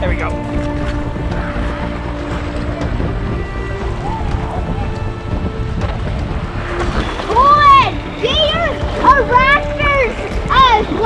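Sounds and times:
background music with held notes: 0:00.0 - 0:11.0
river water rushing: 0:00.0 - 0:11.0
wind on microphone: 0:00.0 - 0:11.0.

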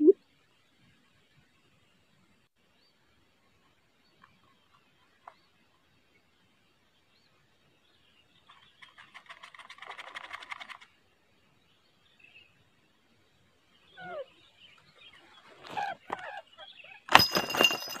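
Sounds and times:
bird rattling trill: 0:08.8 - 0:10.9.

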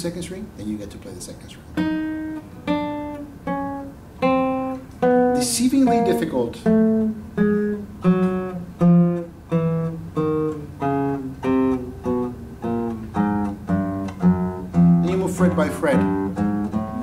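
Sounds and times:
classical guitar single notes plucked: 0:01.7 - 0:17.0.

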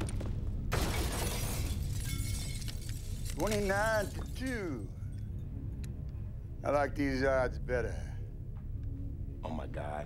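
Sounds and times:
glass shattering: 0:00.7 - 0:04.8
glass shards clattering: 0:00.8 - 0:04.7.

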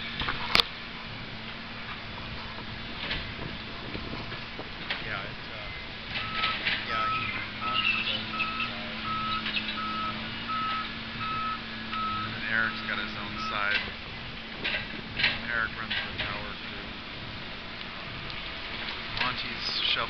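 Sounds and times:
heavy machinery engine drone: 0:00.0 - 0:20.0
backup alarm beeping: 0:06.1 - 0:14.0.

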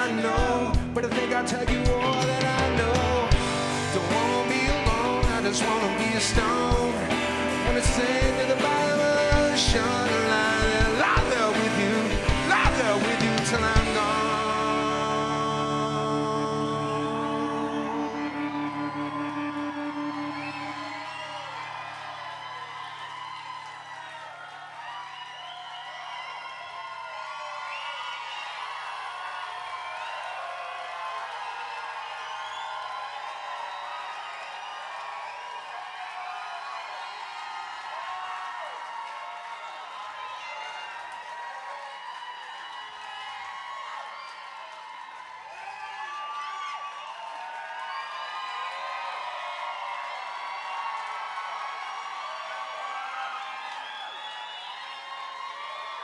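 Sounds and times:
crowd cheering and clapping: 0:00.0 - 0:56.0.

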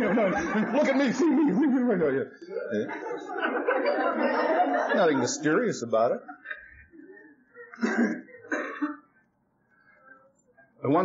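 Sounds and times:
man clearing his throat: 0:07.8 - 0:09.1.

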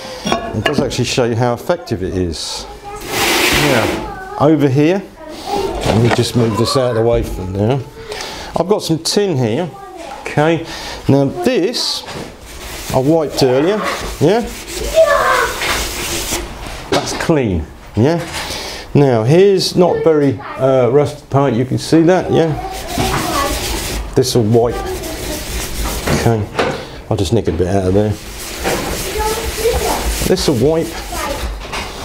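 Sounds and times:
faint children's voices: 0:01.5 - 0:12.3, 0:12.9 - 0:15.9, 0:19.5 - 0:27.0, 0:28.6 - 0:32.0
rag rubbing on wet sheet steel: 0:02.9 - 0:04.2, 0:11.1 - 0:16.8, 0:21.9 - 0:26.4, 0:27.8 - 0:32.0.

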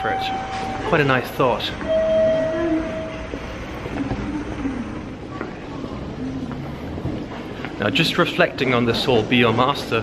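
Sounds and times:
steady high tone: 0:00.0 - 0:03.8
train running: 0:00.0 - 0:10.0.

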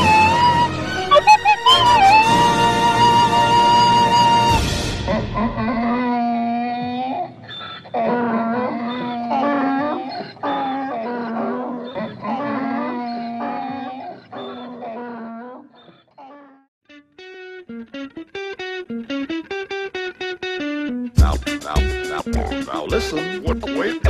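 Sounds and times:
donkey braying: 0:00.0 - 0:16.6, 0:21.2 - 0:24.0.

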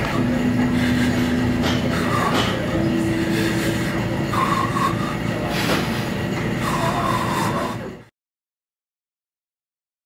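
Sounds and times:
loud steady rumbling: 0:00.0 - 0:08.1.

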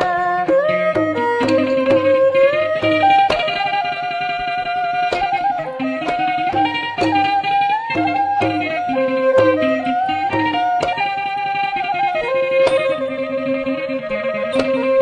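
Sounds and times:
ensemble melody with sliding notes: 0:00.0 - 0:15.0
sharp percussion strikes: 0:00.0 - 0:15.0.

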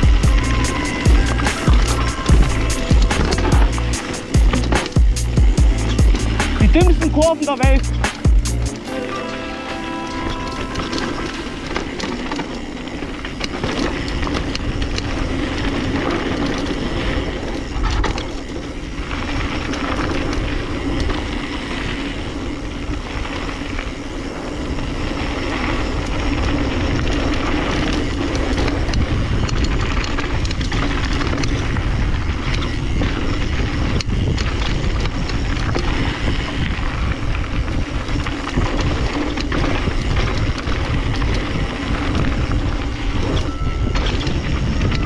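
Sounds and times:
wind rushing on microphone: 0:00.0 - 0:08.2, 0:10.6 - 0:45.0
bike rattling over bumps: 0:00.0 - 0:08.9, 0:10.2 - 0:45.0
tyres crunching over loose stones: 0:00.0 - 0:08.9, 0:10.4 - 0:45.0.

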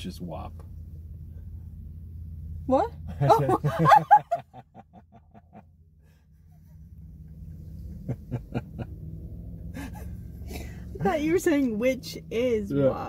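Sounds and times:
hearty laughter: 0:03.1 - 0:05.7, 0:07.9 - 0:09.0.

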